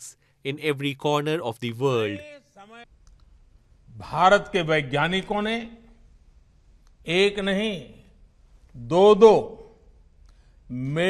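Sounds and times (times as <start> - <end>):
man speaking: 0.0 - 2.9, 3.9 - 5.9, 7.0 - 8.1
narration speech: 0.0 - 2.9, 3.9 - 6.0, 7.0 - 9.8, 10.7 - 11.0.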